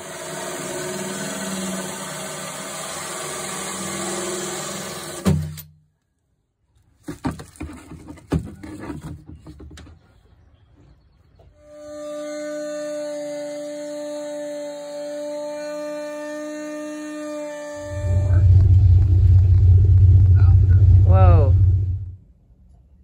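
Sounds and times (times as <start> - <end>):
rotary tool whining: 0.0 - 5.6, 11.6 - 21.0
deep rumble: 17.8 - 22.9.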